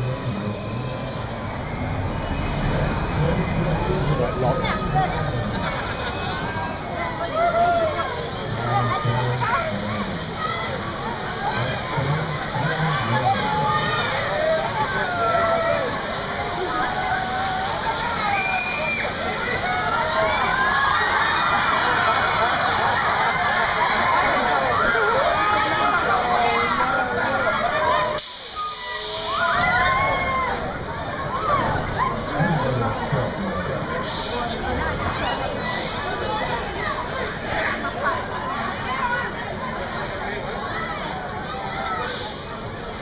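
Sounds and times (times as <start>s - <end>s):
riders screaming and shouting: 0.0s - 42.7s
water fountains spraying: 2.0s - 26.4s.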